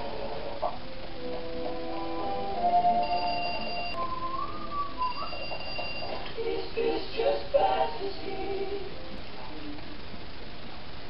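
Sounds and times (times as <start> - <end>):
high steady electronic alarm tones: 1.0 - 6.6
wavering whistle-like tone: 1.3 - 6.3.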